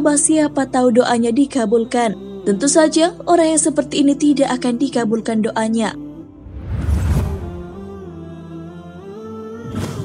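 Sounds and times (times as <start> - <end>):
wordless hummed vocals: 1.9 - 10.0
short whoosh: 6.4 - 8.0.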